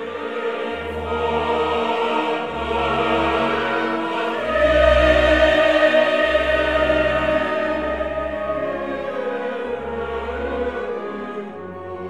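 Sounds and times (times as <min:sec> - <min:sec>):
choir singing held notes: 0:00.0 - 0:11.5
orchestral music: 0:00.0 - 0:12.0.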